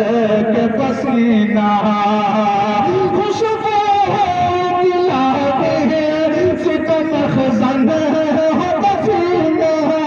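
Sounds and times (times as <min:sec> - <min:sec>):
man singing through pa system: 0:00.0 - 0:10.0.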